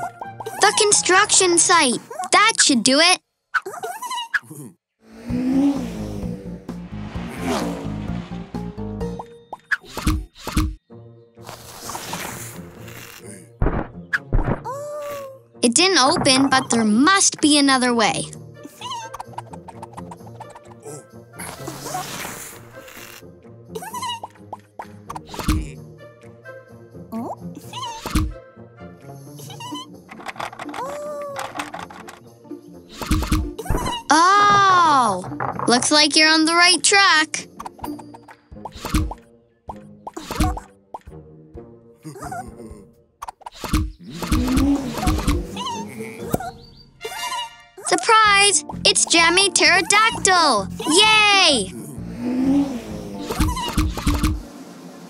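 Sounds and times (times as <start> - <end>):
background music: 0.0 - 3.2, 5.1 - 54.5
warbling squeaky sounds: 9.5 - 10.8, 18.8 - 20.8, 29.4 - 32.0, 32.9 - 34.6, 43.2 - 54.5
cartoon thumps and knocks: 9.9 - 10.8, 13.6 - 14.7, 25.1 - 25.7, 28.0 - 28.4, 37.6 - 39.2, 40.1 - 40.7, 43.2 - 45.6, 53.3 - 54.4
rising squeaky glide: 52.1 - 55.0.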